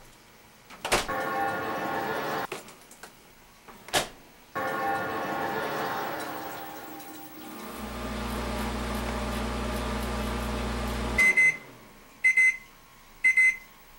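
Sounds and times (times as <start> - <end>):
ringing tone: 4.6 - 7.5
microwave oven humming: 4.6 - 12.1
high beeps in pairs: 12.2 - 12.6, 13.3 - 13.7.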